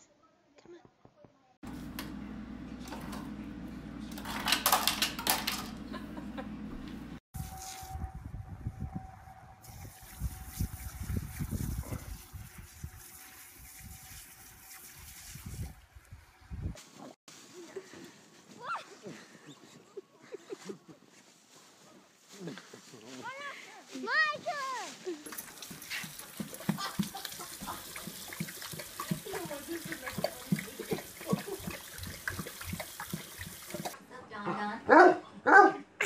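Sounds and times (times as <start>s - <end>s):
refrigerator dispenser humming: 1.7s - 7.1s
wind rumble on microphone: 7.4s - 14.2s, 15.0s - 16.8s
sprinkler spray hissing: 9.6s - 15.5s, 25.2s - 34.0s.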